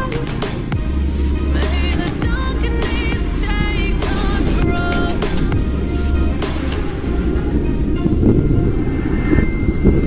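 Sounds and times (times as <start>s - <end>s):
motorcycle engine rumble: 0.0s - 9.0s.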